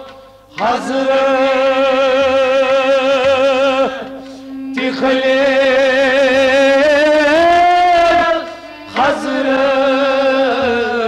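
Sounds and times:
harmonium drone: 0:00.0 - 0:11.0
man singing a long note: 0:00.6 - 0:11.0.

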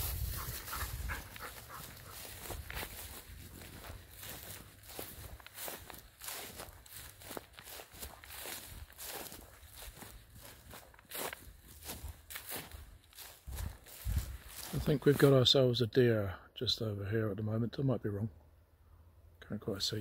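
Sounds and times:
footsteps crunching on dry grass: 0:00.0 - 0:15.7.

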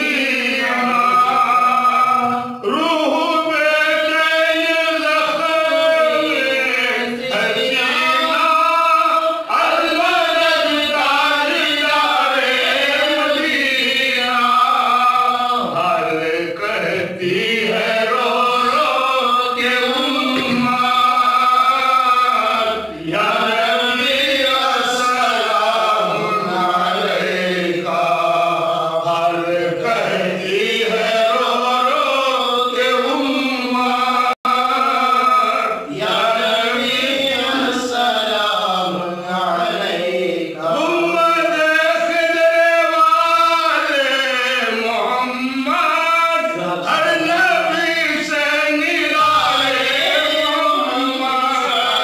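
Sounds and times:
men chanting devotional recitation: 0:00.0 - 0:52.0.

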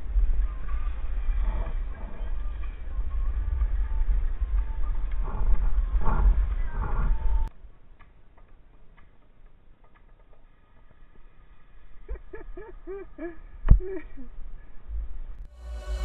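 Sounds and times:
wind buffeting microphone: 0:00.0 - 0:07.5.

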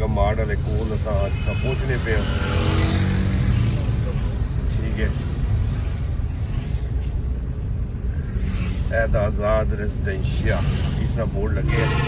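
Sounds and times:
car engine and road rumble: 0:00.0 - 0:12.0
passing vehicle engine buzz: 0:00.7 - 0:09.2.

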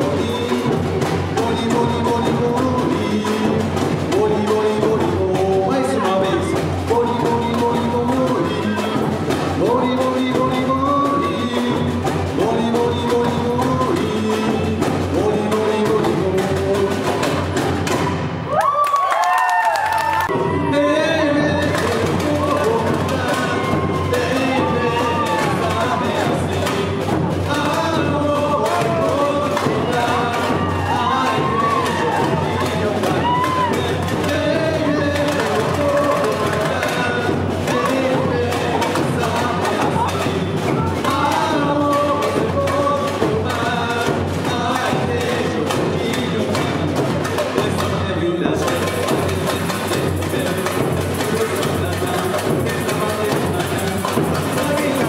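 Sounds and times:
person singing: 0:00.0 - 0:18.1, 0:19.9 - 0:55.0
percussion band playing fast beat: 0:00.0 - 0:55.0.

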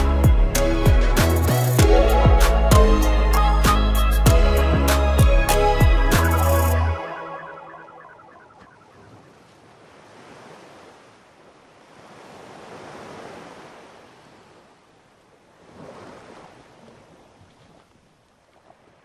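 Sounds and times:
sea surf on sandy beach: 0:07.0 - 0:19.0.

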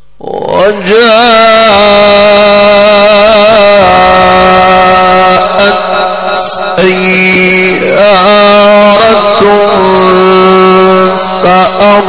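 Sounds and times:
man reciting a long held note: 0:00.0 - 0:12.0.

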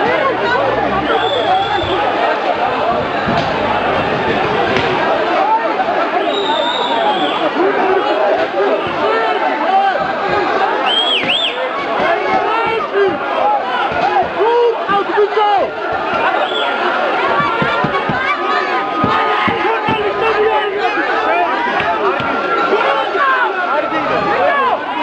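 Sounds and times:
crowd of men shouting: 0:00.0 - 0:25.0.

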